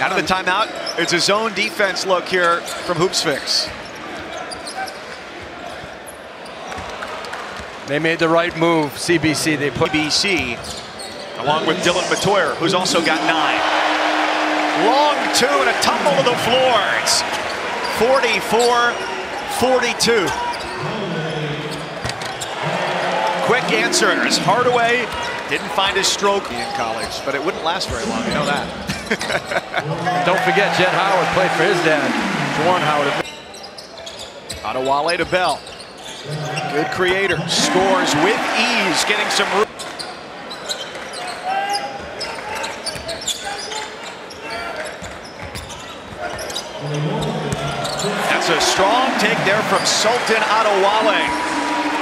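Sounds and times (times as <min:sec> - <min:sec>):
crowd noise: 0:00.0 - 0:52.0
shoes squeaking: 0:03.7 - 0:05.1, 0:39.8 - 0:51.3.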